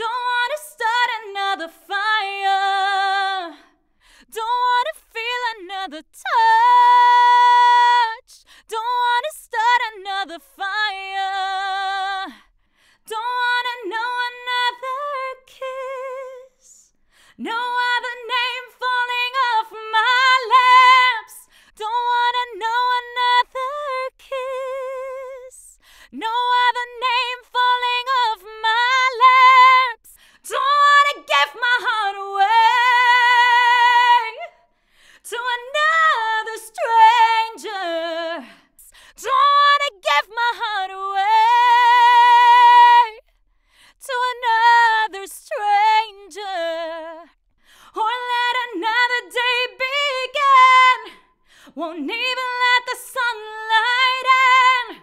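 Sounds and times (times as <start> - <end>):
woman singing unaccompanied: 17.4 - 34.5, 35.2 - 43.2, 44.0 - 47.3, 47.9 - 55.0.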